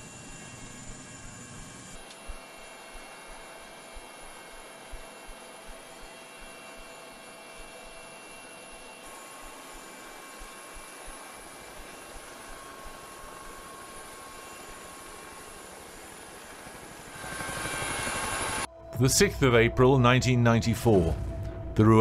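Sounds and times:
helicopter running: 0:00.0 - 0:22.0.

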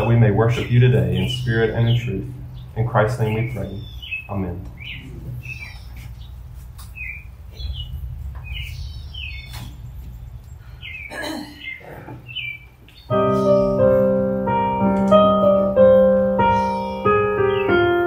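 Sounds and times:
steady low hum: 0:00.0 - 0:16.5
small birds chirping: 0:00.0 - 0:18.0.

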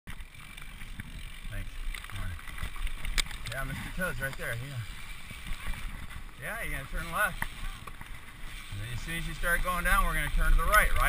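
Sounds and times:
bike clicks and rattles: 0:00.1 - 0:11.0
bike tyres rumbling on dirt: 0:00.1 - 0:11.0.

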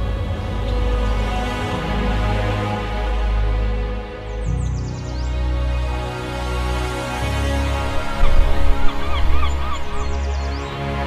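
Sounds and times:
background music with bass drone: 0:00.0 - 0:11.0.

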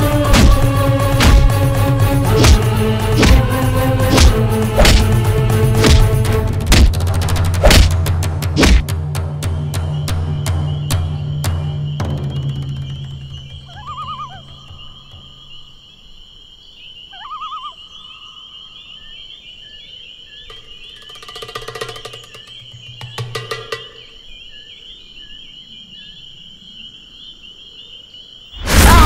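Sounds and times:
insect chirring: 0:10.3 - 0:28.9.

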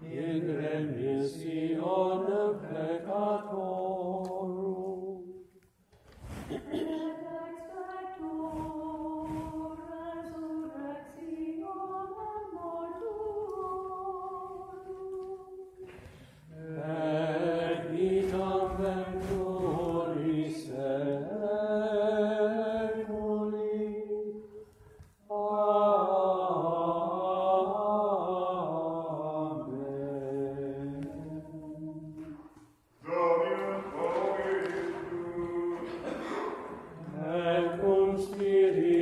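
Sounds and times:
choir chanting: 0:00.0 - 0:05.3, 0:15.9 - 0:23.7, 0:25.3 - 0:32.4, 0:33.0 - 0:39.0.

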